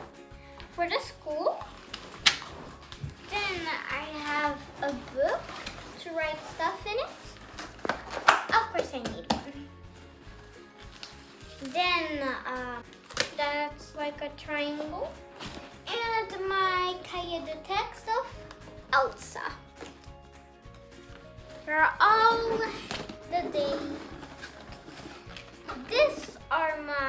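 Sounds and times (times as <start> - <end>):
music: 0.0 - 27.0
girl speaking: 0.8 - 1.7, 3.3 - 5.4, 6.0 - 7.3, 8.5 - 9.6, 11.6 - 15.2, 15.9 - 19.7, 21.6 - 24.0, 25.7 - 27.0.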